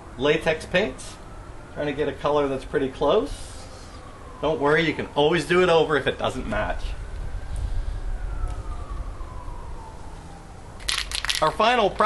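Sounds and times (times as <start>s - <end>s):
distant siren falling in pitch: 0.0s - 12.0s
steady low rumble: 0.0s - 12.0s.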